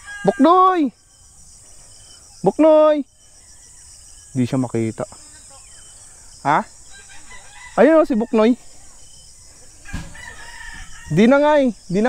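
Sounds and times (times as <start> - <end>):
faint rooster crowing: 0.0 - 1.2, 3.2 - 4.8, 6.8 - 11.7
thump: 9.9 - 10.3.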